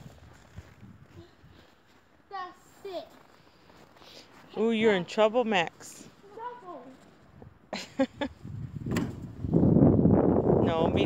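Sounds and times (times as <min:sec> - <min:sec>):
footsteps in snow: 0:00.0 - 0:05.3.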